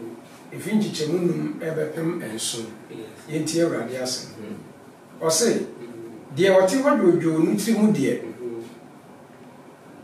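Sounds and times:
man speaking: 0:00.0 - 0:08.8.

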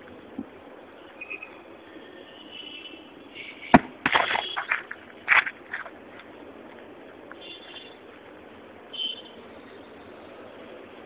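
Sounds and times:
stone thudding onto pavement: 0:03.7 - 0:05.9.

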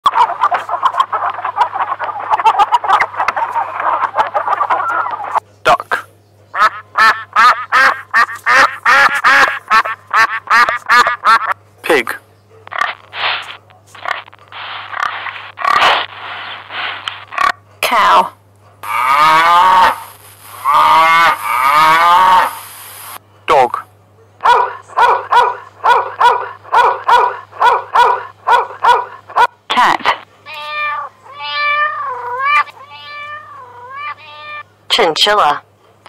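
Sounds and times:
ducks quacking: 0:00.1 - 0:05.4, 0:06.5 - 0:11.6, 0:12.7 - 0:17.6, 0:18.8 - 0:20.0, 0:20.6 - 0:22.6.

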